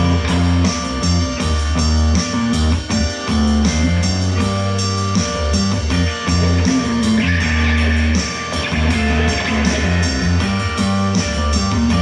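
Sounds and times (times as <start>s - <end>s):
electric guitar: 0.0s - 12.0s
moving bass line: 0.0s - 12.0s.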